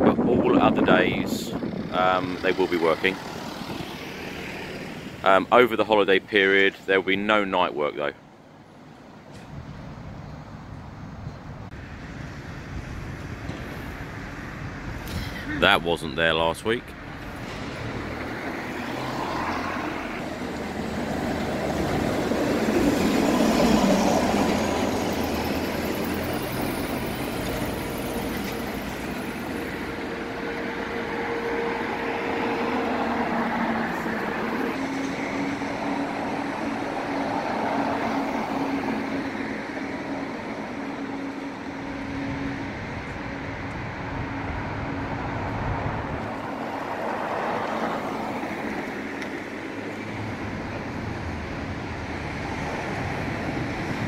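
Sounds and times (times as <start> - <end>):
road traffic passing: 0.0 - 54.0
steady engine hum: 0.0 - 54.0.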